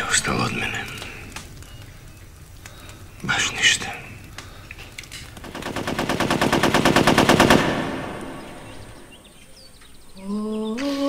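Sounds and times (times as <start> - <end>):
rapid rattle of sharp beats: 5.4 - 8.2.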